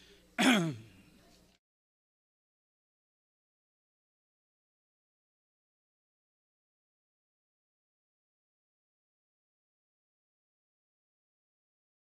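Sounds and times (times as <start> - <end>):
man clearing his throat: 0.4 - 1.0.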